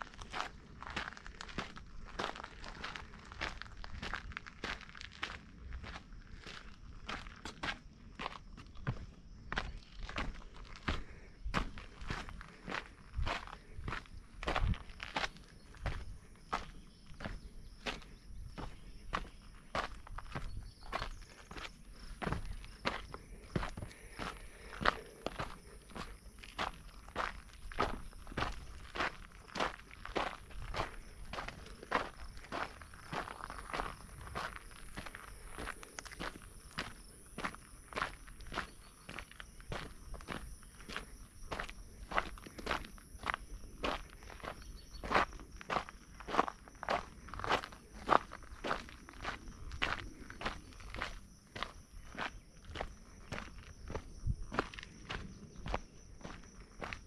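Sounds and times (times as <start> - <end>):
footsteps on gritty dirt trail: 0.0 - 57.0.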